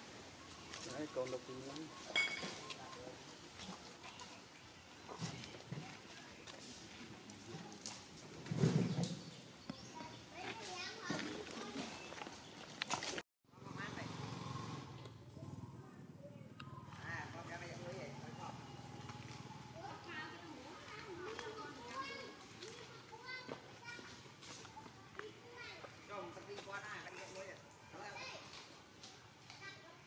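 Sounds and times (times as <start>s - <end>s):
children's voices: 9.7s - 12.1s, 19.6s - 26.0s.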